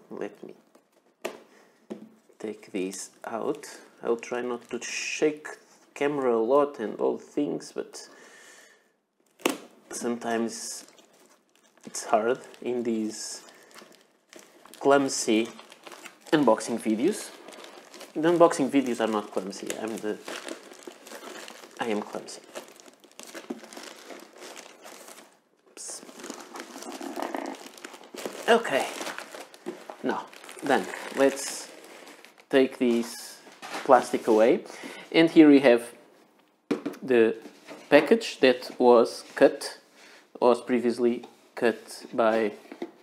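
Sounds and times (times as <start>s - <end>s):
plastic bag crinkling: 10.6s - 34.2s.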